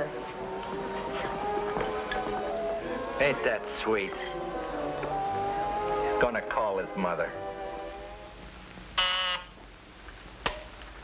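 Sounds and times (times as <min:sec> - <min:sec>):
telephone buzzer: 0:09.0 - 0:09.5.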